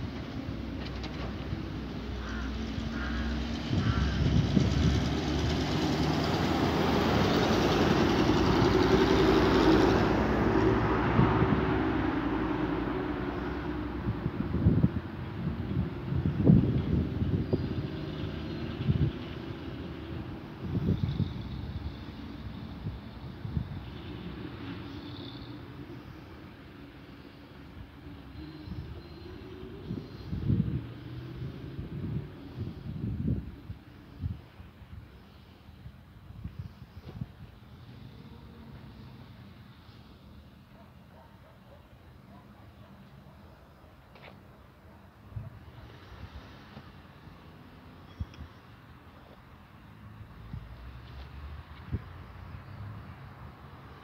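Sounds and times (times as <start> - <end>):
passing vehicle rumble: 0.0 - 54.0.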